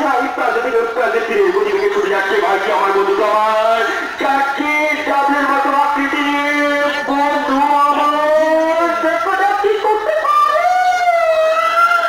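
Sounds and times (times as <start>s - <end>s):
person's long drawn-out call: 9.8s - 12.0s.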